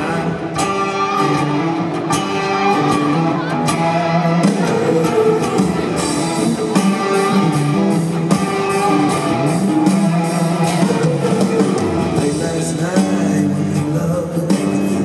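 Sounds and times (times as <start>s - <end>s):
man singing: 0.0s - 1.4s, 10.0s - 15.0s
drum kit beat: 0.0s - 15.0s
electric guitar: 0.0s - 15.0s.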